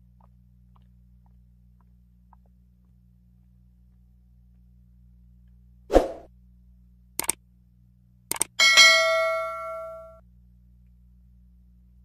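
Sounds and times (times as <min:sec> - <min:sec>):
sharp clicks: 0:07.2 - 0:07.4, 0:08.3 - 0:08.6
bright metallic ding: 0:08.6 - 0:10.2.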